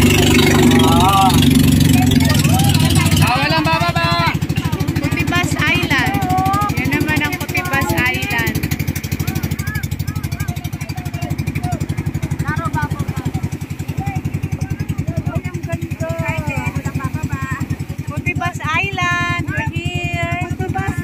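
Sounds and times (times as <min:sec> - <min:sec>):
boat engine chugging: 0:00.0 - 0:21.0
people's voices: 0:00.0 - 0:21.0.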